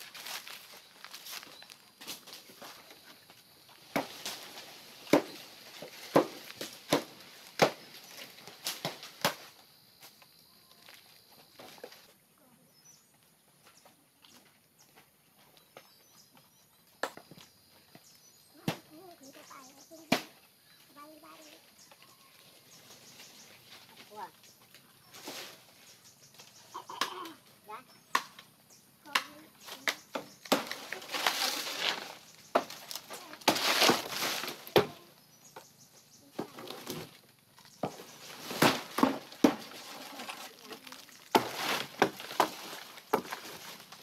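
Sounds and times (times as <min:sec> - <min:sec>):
dry palm leaves rustling: 0:00.0 - 0:12.2, 0:21.0 - 0:28.6, 0:29.3 - 0:35.2, 0:36.2 - 0:44.0.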